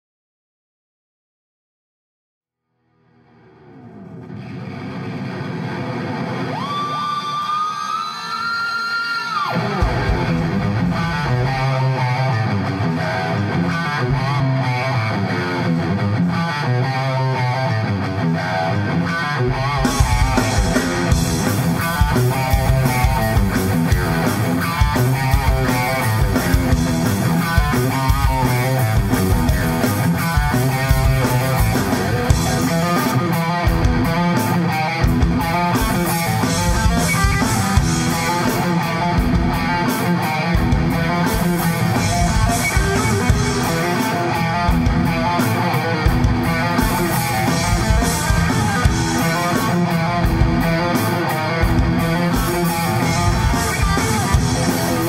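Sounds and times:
distorted electric guitar: 0:02.8 - 0:55.0
bass guitar: 0:09.5 - 0:55.0
drum kit with cymbals: 0:09.6 - 0:12.3, 0:19.6 - 0:55.0.

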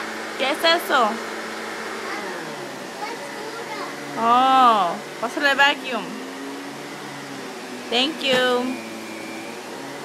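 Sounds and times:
vacuum cleaner on rug: 0:00.0 - 0:10.0.

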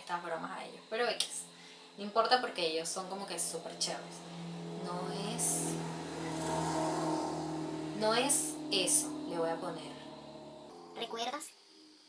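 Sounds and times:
car passing by: 0:01.3 - 0:11.1.

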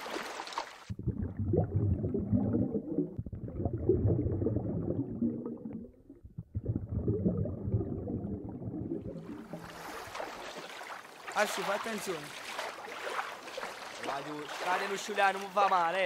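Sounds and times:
legs wading through water: 0:00.0 - 0:01.0, 0:09.0 - 0:16.0
underwater gurgling water: 0:00.8 - 0:11.2.

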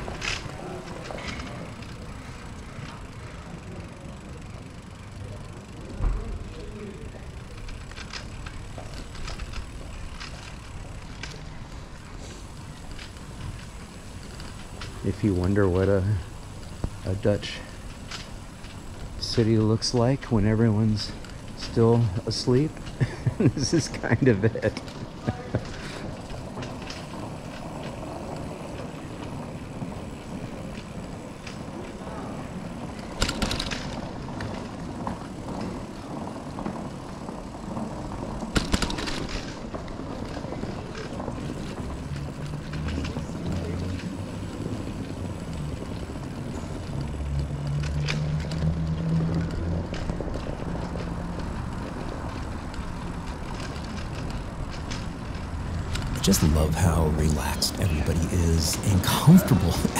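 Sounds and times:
bicycle rattling over bumps: 0:00.0 - 0:56.6
bicycle rolling over pavers: 0:00.0 - 0:58.0.

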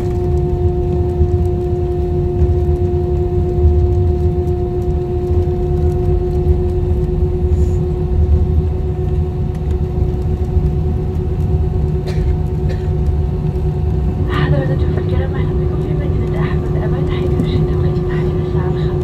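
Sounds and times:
airliner cabin rumble: 0:00.0 - 0:19.0
jet engine hum: 0:00.0 - 0:19.0.

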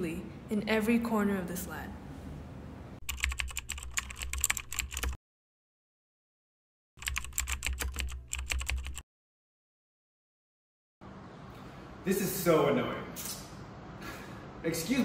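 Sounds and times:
computer keyboard typing: 0:03.0 - 0:05.2, 0:07.0 - 0:09.0.

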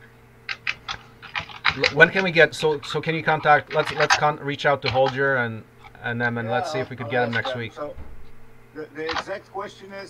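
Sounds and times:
faint steady hum: 0:00.0 - 0:10.0
man speaking: 0:01.8 - 0:08.0.

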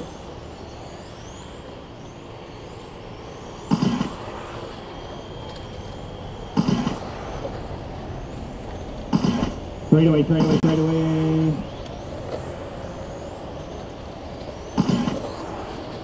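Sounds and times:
electric motors whining: 0:00.0 - 0:16.0
generator hum: 0:00.0 - 0:16.0.

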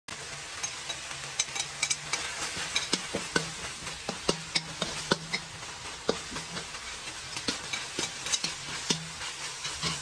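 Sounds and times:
beef sizzling in a wok: 0:00.1 - 0:10.0
metal spatula scraping pan: 0:00.4 - 0:10.0.

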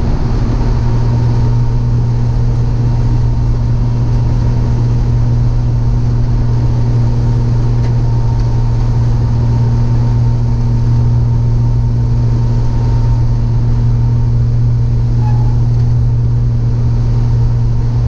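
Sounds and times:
car engine drone: 0:00.0 - 0:18.0
road noise: 0:00.0 - 0:18.0.

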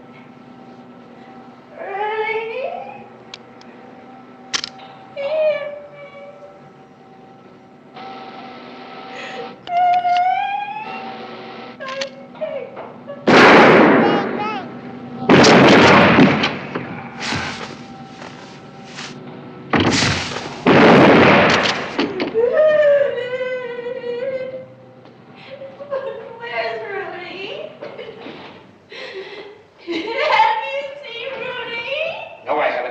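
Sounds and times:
loud gunshots ringing in a stairwell: 0:13.3 - 0:14.7, 0:15.3 - 0:18.1, 0:19.7 - 0:22.1
man crying out in pain: 0:13.9 - 0:14.8.

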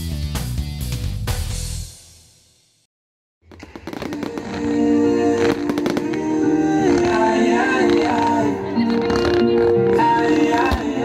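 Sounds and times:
loud music: 0:00.0 - 0:02.1, 0:03.8 - 0:11.0
fireworks bangs and crackling: 0:03.4 - 0:11.0.

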